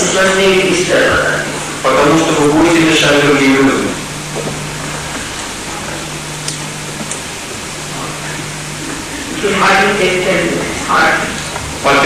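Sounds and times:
low hum: 0:00.0 - 0:12.0
steady hiss: 0:00.0 - 0:12.0.

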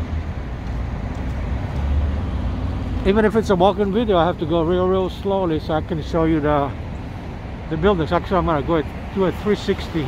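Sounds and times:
cars passing on street: 0:00.0 - 0:10.0.

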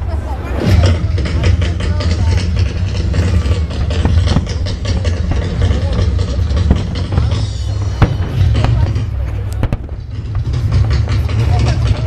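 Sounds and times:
continuous low rumble: 0:00.0 - 0:12.0
fireworks bangs and crackles: 0:00.2 - 0:12.0.

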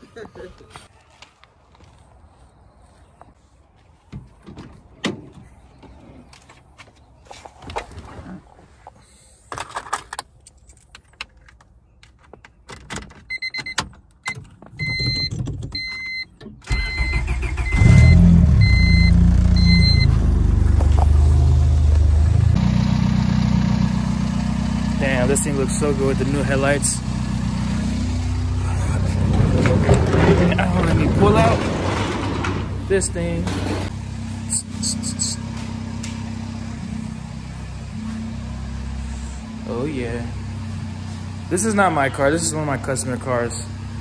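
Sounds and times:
car engine starting and idling: 0:16.6 - 0:44.0
electronic warning chime beeping: 0:16.8 - 0:20.1.

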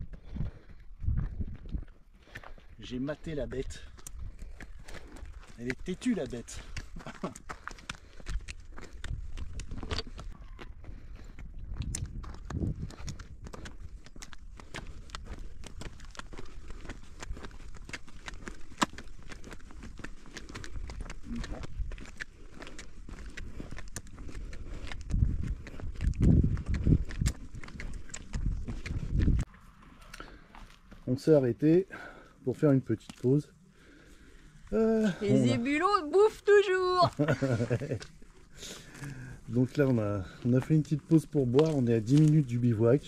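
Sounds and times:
wind buffeting microphone: 0:00.0 - 0:01.9, 0:08.1 - 0:29.5
footsteps: 0:00.0 - 0:31.4, 0:36.5 - 0:43.0
hooves clip-clopping on pavement: 0:00.0 - 0:34.3, 0:35.0 - 0:43.0.

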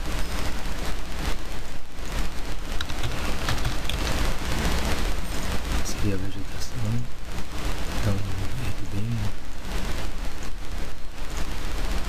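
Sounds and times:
microphone hiss and crackle: 0:00.0 - 0:12.0.

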